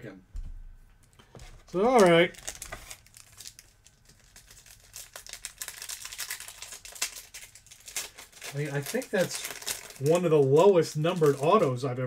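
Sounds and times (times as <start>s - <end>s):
foil wrapper crinkling: 1.1s - 11.9s.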